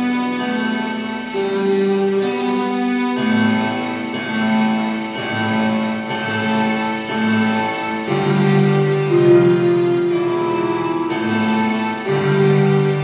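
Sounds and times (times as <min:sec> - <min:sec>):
piano and string keyboard music: 0:00.0 - 0:13.0.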